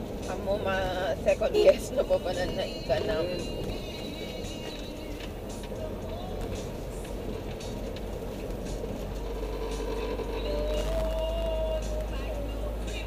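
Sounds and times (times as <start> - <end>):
road and engine rumble in vehicle: 0.0 - 13.0.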